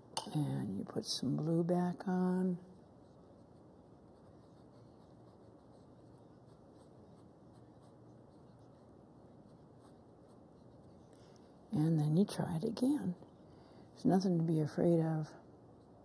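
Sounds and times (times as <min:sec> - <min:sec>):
steady low hiss: 0:00.0 - 0:16.0
paintbrush scratching on canvas: 0:01.9 - 0:13.4.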